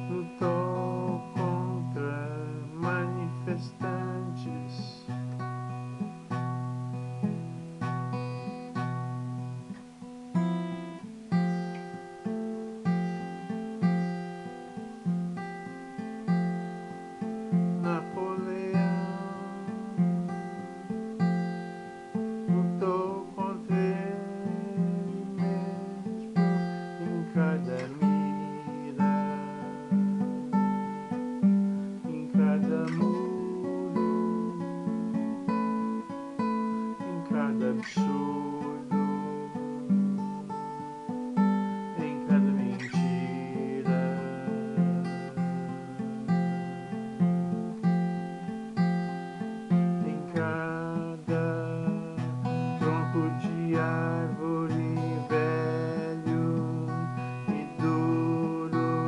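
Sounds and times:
acoustic guitar chords: 0.0 - 59.0.

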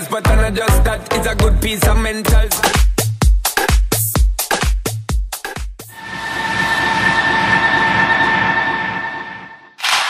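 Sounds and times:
tram whining and rumbling: 5.9 - 10.0.

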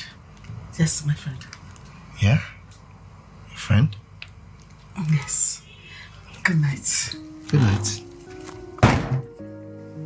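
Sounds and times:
soft music of held chords: 6.4 - 10.0
door shutting thud: 8.8 - 9.3.

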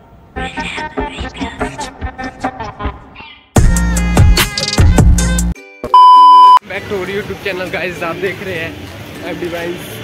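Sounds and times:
loud music with heavy beat: 3.6 - 5.5
high electronic beep: 6.0 - 6.6.

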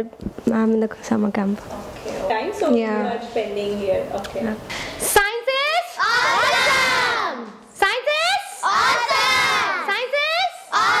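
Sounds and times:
children shouting together: 6.0 - 7.4, 8.6 - 9.9, 10.6 - 11.0.

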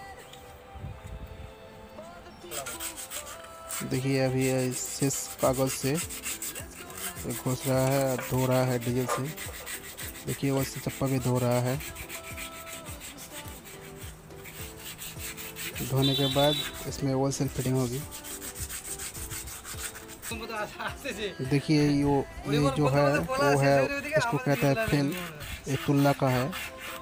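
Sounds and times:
background music tones: 0.0 - 27.0
metal scraping and rubbing: 2.4 - 27.0.

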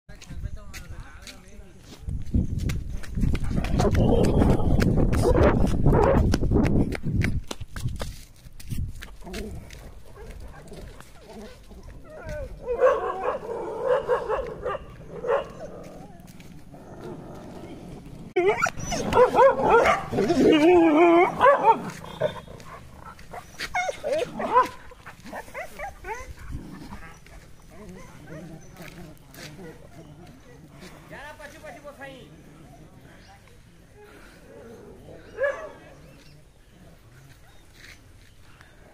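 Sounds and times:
footsteps on dirt path: 0.1 - 32.3, 35.0 - 38.9
dogs yelping and whining: 18.3 - 24.7, 25.3 - 28.9.

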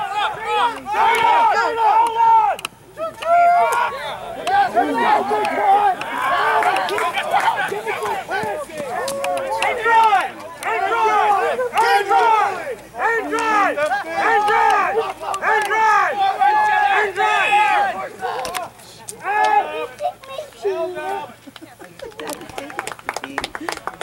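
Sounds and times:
people shouting and calling: 0.0 - 22.6
crowd cheering: 0.0 - 24.0.

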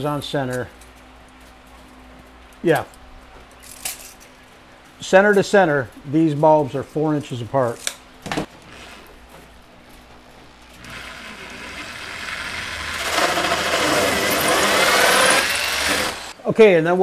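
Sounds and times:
power drill boring foam board: 10.8 - 16.4.

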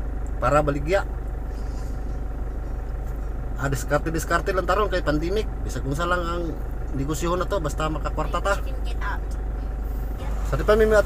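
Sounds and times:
car interior rumble: 0.0 - 11.0
man talking: 0.4 - 1.1, 3.6 - 8.6, 10.5 - 11.0.

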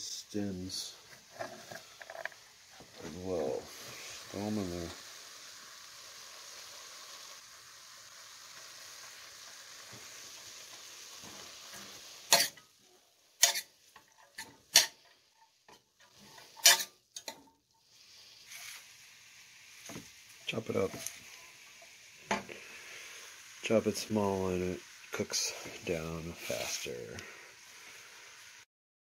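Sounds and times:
greens sizzling in a pot: 0.0 - 28.7.

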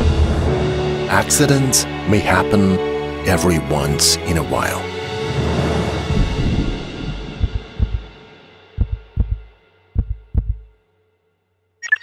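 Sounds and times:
heartbeat thumps: 6.2 - 8.2, 8.8 - 10.7.

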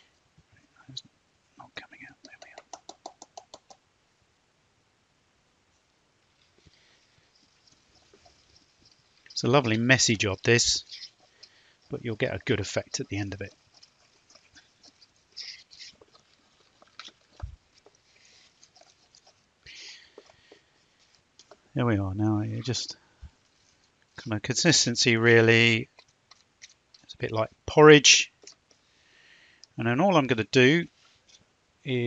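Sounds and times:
spoon scraping through plaster: 6.4 - 21.7, 22.7 - 28.9.

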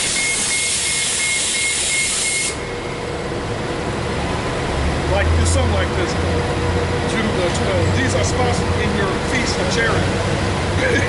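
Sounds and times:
bus pneumatic air hiss: 0.0 - 2.6
rapid high-pitched warning beep: 0.0 - 2.8
low traffic noise: 2.5 - 11.0.

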